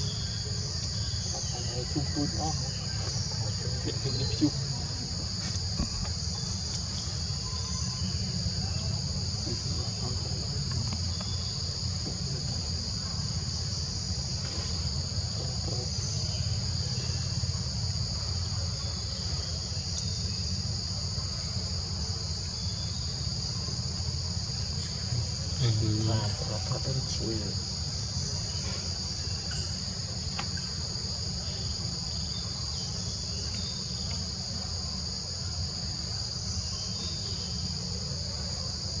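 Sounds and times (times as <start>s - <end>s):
high-pitched insect drone: 0.0s - 39.0s.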